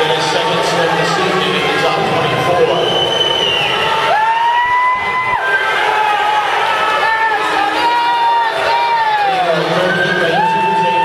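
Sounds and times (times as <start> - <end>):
spectators yelling and cheering: 0.0 - 11.0
long high held cry: 4.0 - 9.6.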